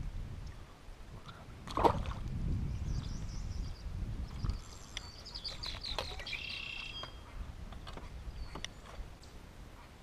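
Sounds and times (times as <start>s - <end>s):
small birds chirping: 2.8s - 9.4s.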